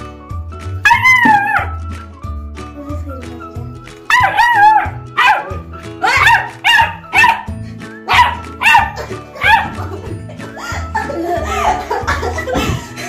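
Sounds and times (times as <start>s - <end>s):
background music: 0.0s - 13.0s
puppy barking: 0.8s - 1.8s, 4.1s - 9.9s.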